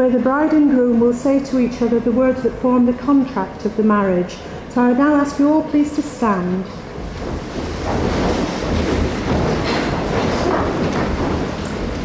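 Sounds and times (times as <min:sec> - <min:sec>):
chairs scraping on wooden floor: 0:06.7 - 0:12.0
rustling clothes: 0:06.8 - 0:12.0
shuffling feet: 0:06.8 - 0:12.0.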